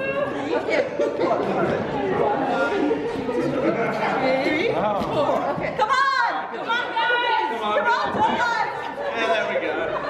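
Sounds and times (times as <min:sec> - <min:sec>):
chatter of overlapping voices: 0:00.0 - 0:10.0.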